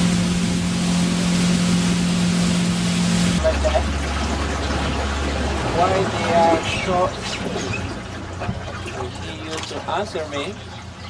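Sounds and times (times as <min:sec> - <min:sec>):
motorboat engine humming: 0:00.0 - 0:11.0
wind and water noise: 0:00.0 - 0:11.0.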